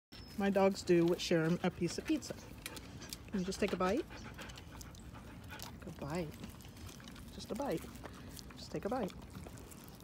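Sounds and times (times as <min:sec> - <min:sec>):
dog panting softly: 0:01.0 - 0:10.0.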